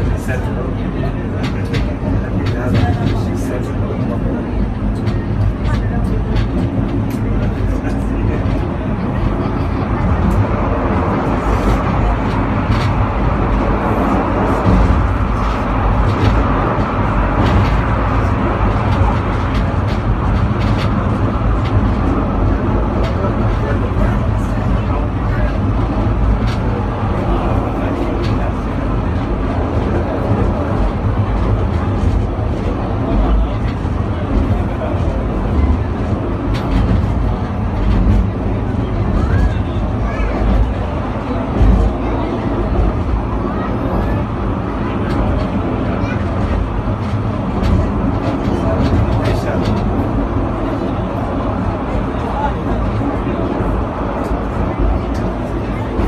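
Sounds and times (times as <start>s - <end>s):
funicular car rumbling on track: 0.0s - 56.0s
passengers' voices: 0.0s - 56.0s.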